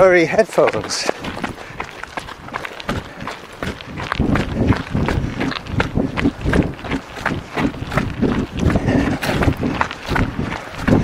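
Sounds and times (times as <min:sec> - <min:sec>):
running footsteps: 0:00.0 - 0:11.0.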